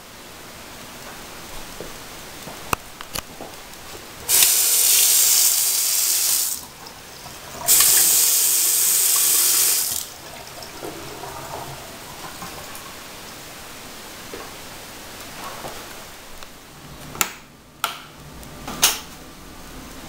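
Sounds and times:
faucet water running into sink: 4.2s - 13.4s.

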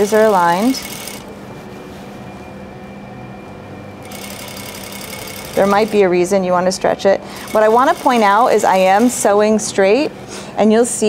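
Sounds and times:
sewing machine running: 0.0s - 1.2s, 4.0s - 6.1s, 7.4s - 9.4s.

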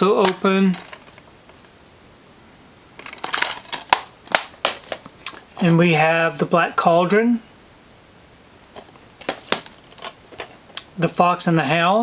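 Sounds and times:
plastic case rustle: 0.0s - 1.7s, 3.0s - 6.1s, 8.7s - 10.8s.

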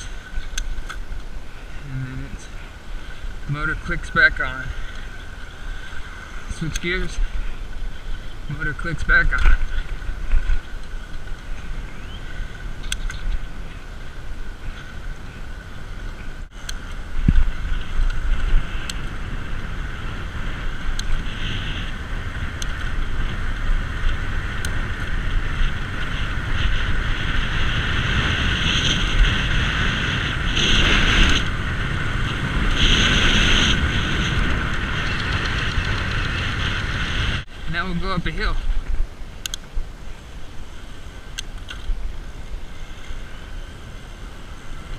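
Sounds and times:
wind on microphone: 0.0s - 44.9s.

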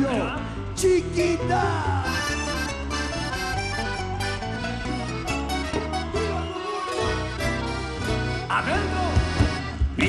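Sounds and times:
live band instrumental: 1.6s - 10.0s.

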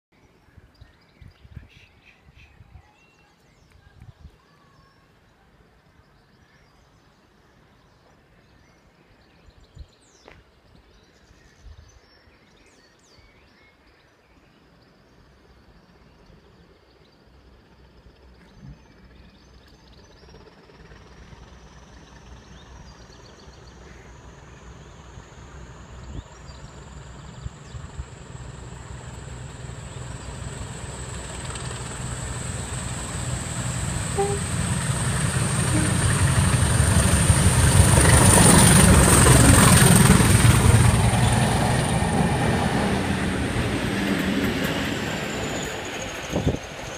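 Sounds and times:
diesel locomotive engine rumble: 17.4s - 46.9s
high whistle rising in pitch: 32.2s - 36.8s.

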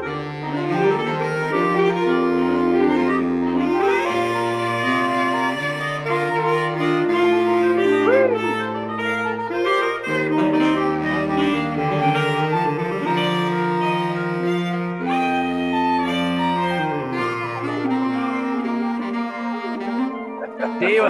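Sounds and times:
saxophone quartet playing: 0.0s - 21.0s.

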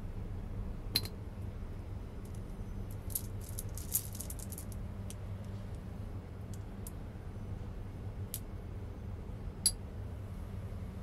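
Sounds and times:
steady low hum: 0.0s - 11.0s
pebbles clicking together: 2.2s - 5.8s.

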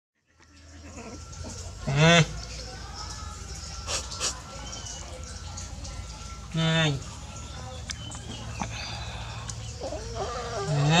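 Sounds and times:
low background hum: 0.5s - 11.0s.

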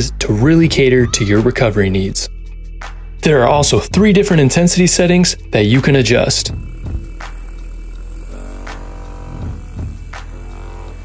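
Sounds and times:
background music: 0.0s - 11.0s
massage gun buzzing: 6.5s - 11.0s.

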